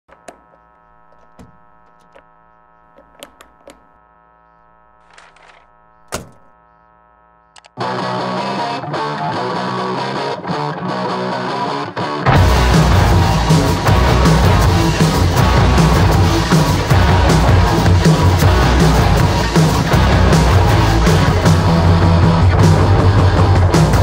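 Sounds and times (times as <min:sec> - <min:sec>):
electrical hum: 0:00.1 - 0:08.1
loud distorted noisy music: 0:12.2 - 0:24.0.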